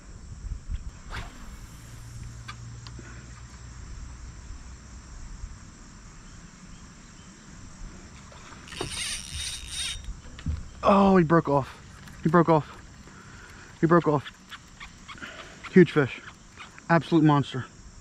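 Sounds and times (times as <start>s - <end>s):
crickets and insects chirping: 0.0s - 18.0s.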